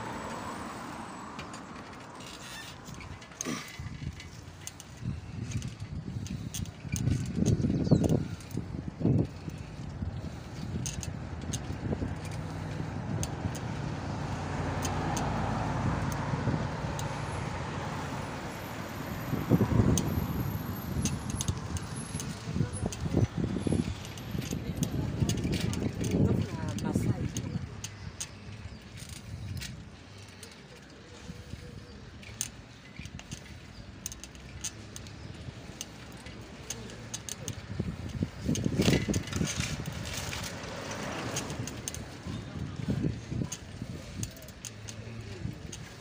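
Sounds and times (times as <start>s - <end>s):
car passing: 0.0s - 4.8s, 9.1s - 22.8s, 38.5s - 46.0s.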